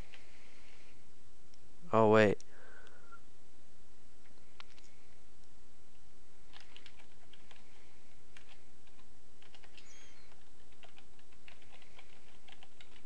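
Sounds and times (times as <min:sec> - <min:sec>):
keyboard typing clicks: 0:08.4 - 0:13.0.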